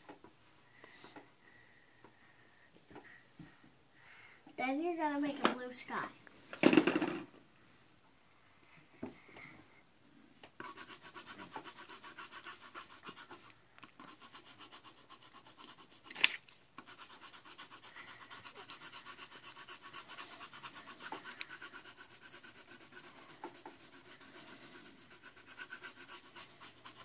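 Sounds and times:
pencil scratching on paper: 10.6 - 27.0.

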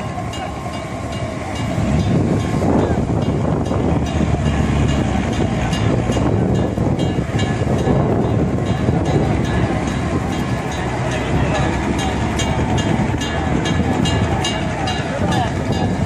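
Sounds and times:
people's voices: 0.0 - 16.0
water jets and pumps rumbling: 0.0 - 16.0.

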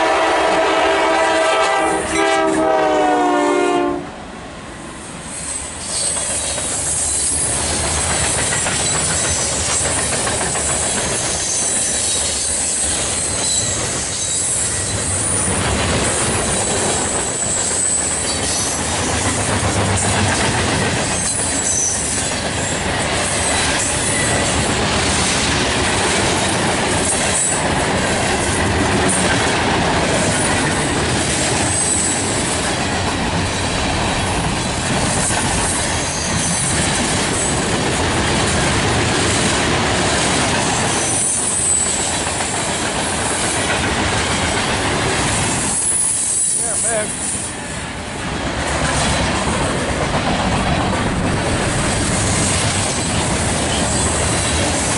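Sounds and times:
freight train wheels rumbling: 0.0 - 54.9
high wheel squeal: 5.3 - 7.7, 10.6 - 16.2, 17.2 - 18.9, 21.0 - 22.8, 23.4 - 24.7, 31.7 - 32.2, 35.6 - 36.7, 40.9 - 42.2, 45.6 - 47.6.

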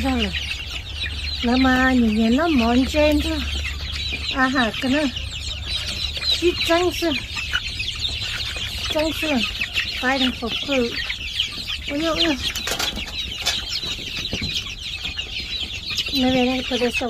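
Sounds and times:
chicks peeping: 0.0 - 17.0.

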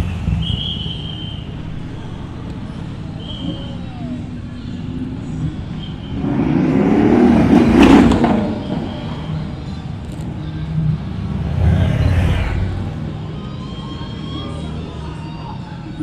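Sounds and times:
cars driving slowly past: 0.0 - 16.0
car engine revving: 6.0 - 9.8.

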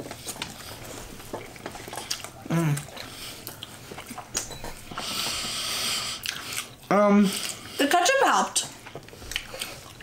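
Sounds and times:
people chewing food: 0.0 - 10.0.

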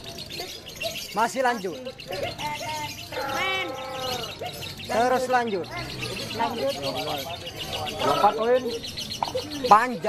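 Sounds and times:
bird chattering song: 0.0 - 10.0
low drawn-out bird call: 1.9 - 9.7.

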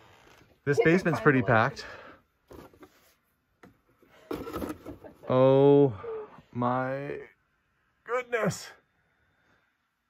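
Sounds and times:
rustling and handling objects: 2.3 - 5.3.

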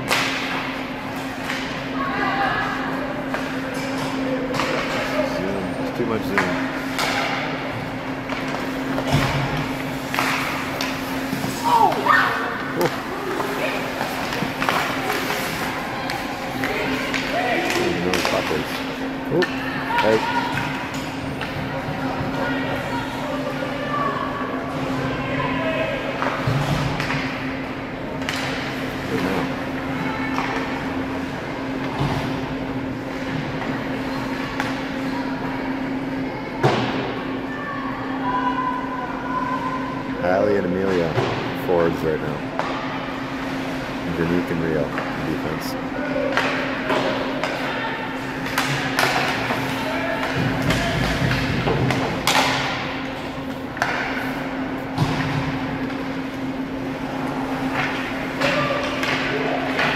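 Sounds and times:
hockey sticks and puck clacking: 0.0 - 1.8, 3.2 - 5.2, 6.4 - 23.6, 26.2 - 27.4, 28.2 - 29.0, 33.1 - 35.0, 46.2 - 59.9
distant shouts: 19.1 - 20.9, 37.2 - 40.2.

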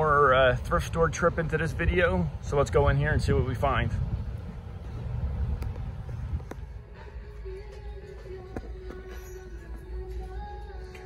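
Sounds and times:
wind rumble: 0.0 - 10.1
background music over speakers: 6.8 - 11.0.

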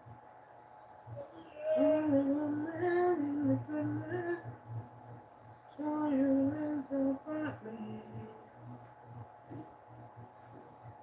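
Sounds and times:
woman singing slow tune: 1.2 - 4.6, 5.7 - 8.6.

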